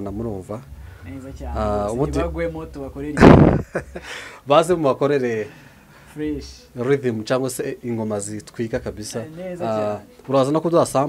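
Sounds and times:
man talking: 0.0s - 3.4s, 4.4s - 11.0s
loud distorted burst into microphone: 3.2s - 3.7s.

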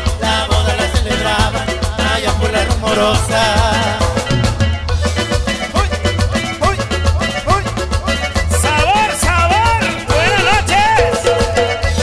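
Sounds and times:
live band playing latin dance music: 0.0s - 12.0s.

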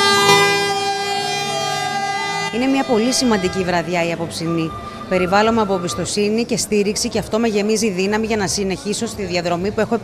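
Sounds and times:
lower held tone: 0.0s - 6.2s
steady held tone: 0.0s - 6.4s.

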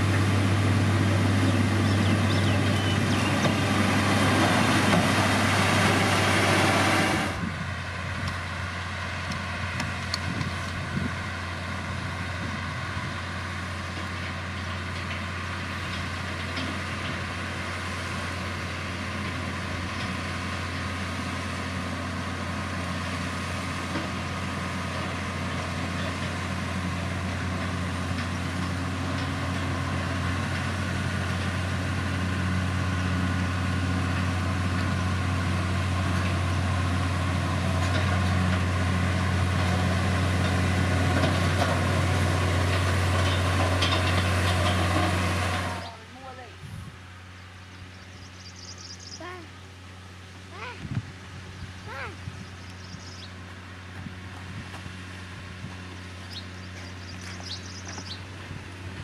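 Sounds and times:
grader diesel engine running: 0.0s - 59.0s.

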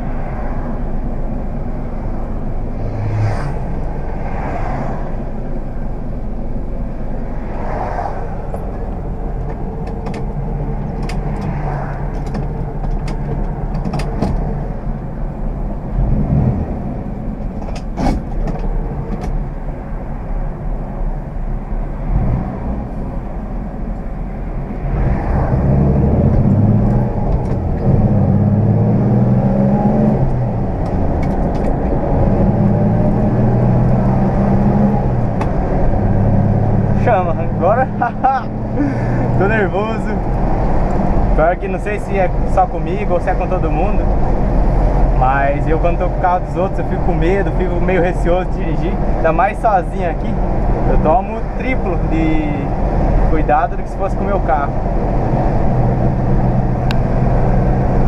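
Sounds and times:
car engine running: 0.0s - 58.0s
tyre and road noise: 0.0s - 58.0s.

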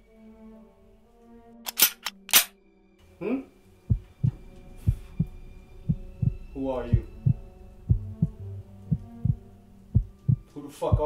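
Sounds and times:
low steady hum: 3.0s - 11.0s
heartbeat double thumps: 3.9s - 11.0s.

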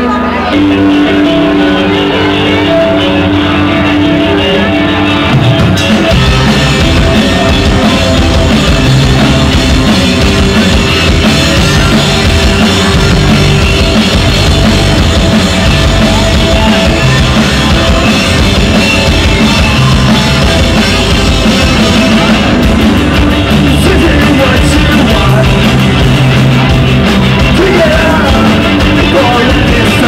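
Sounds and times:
bass guitar: 0.0s - 30.0s
drum kit: 0.0s - 30.0s
electric guitar: 0.0s - 30.0s.

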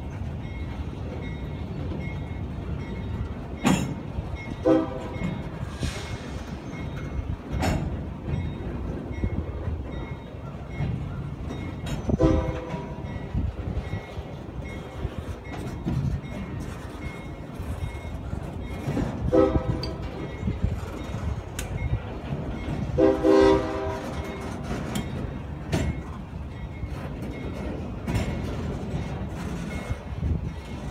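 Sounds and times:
railcar clanks: 0.0s - 30.9s
railcars rumbling: 0.0s - 30.9s.

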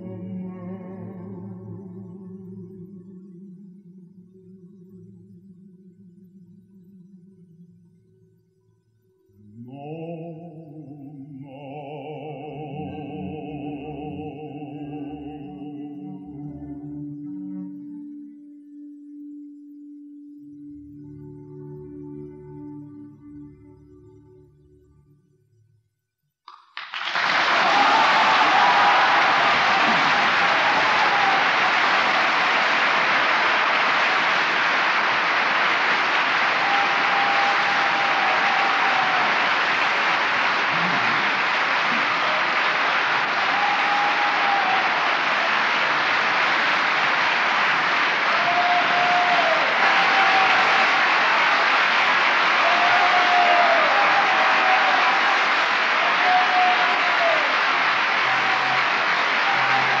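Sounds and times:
audience applauding: 26.5s - 60.0s
audience calls: 26.8s - 60.0s.

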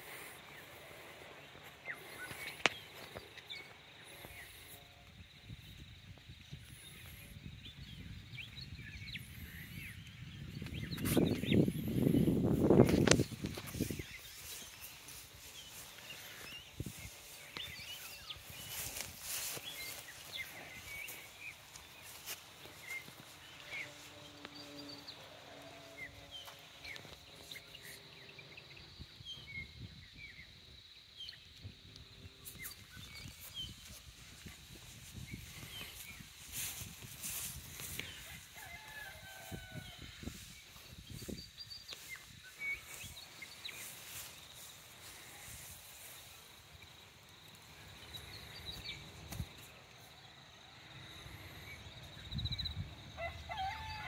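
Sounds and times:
footsteps on grass: 0.0s - 4.8s, 10.6s - 28.0s, 32.4s - 50.1s
small birds chirping: 0.0s - 53.3s
insect trill: 0.0s - 54.0s
distant rooster crowing: 38.1s - 40.4s, 53.1s - 54.0s.

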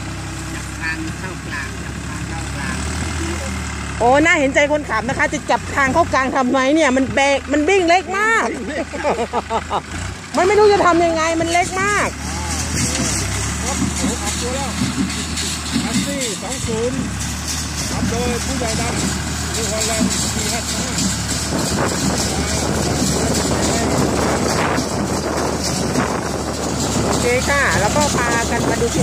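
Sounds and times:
baler working: 0.0s - 29.0s
tractor diesel engine running: 0.0s - 29.0s.

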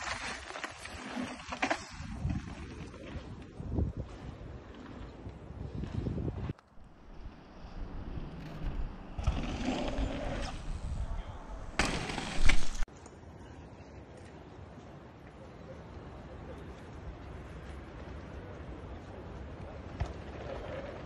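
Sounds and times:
bike tyres on packed dirt: 0.0s - 13.0s, 17.1s - 21.0s
wind on microphone: 1.9s - 12.9s.

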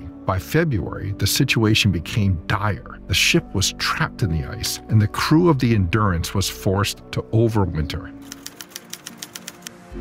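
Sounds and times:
low music bed: 0.0s - 10.0s
soft background music: 0.0s - 10.0s
typewriter key clicks: 8.2s - 9.8s.

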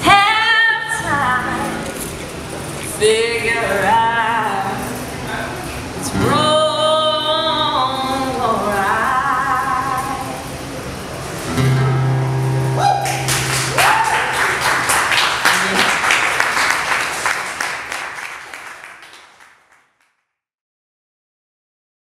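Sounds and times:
acoustic guitar chord ringing: 11.4s - 14.6s
audience whooping: 12.7s - 19.1s
audience clapping: 13.0s - 20.2s.

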